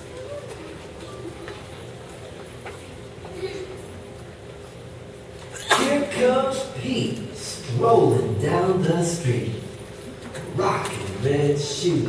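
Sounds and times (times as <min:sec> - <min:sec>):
murmur of crowd in a hall: 0:00.0 - 0:12.0.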